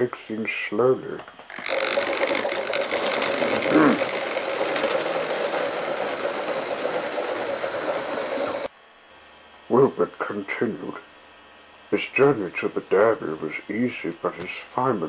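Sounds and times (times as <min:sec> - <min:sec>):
model train motor whirr: 0:01.5 - 0:08.7
wheels rattling over rails: 0:01.5 - 0:08.7.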